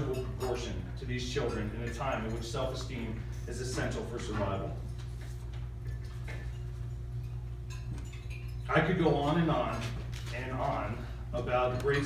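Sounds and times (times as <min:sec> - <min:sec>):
tableware clinking: 0:00.0 - 0:05.2, 0:05.8 - 0:10.0
steady low hum: 0:00.0 - 0:12.0.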